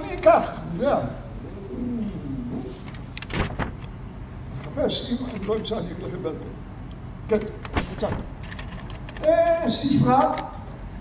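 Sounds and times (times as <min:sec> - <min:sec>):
paper sheets rustling: 0:02.6 - 0:03.8.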